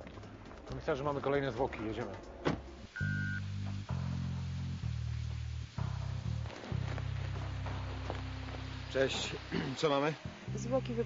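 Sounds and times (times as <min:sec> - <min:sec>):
dark bass music: 0:00.2 - 0:11.0
thump: 0:02.4 - 0:02.8.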